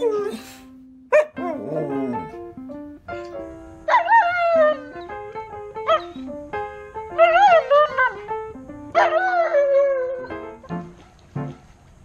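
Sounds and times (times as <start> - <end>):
dog howling: 0.0 - 2.4
background music: 0.0 - 11.6.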